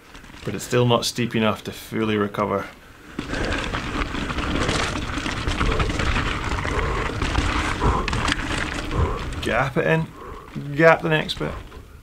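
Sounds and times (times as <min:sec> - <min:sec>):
bike rattling: 0:00.0 - 0:12.0
tyres crunching over gravel: 0:00.0 - 0:12.0.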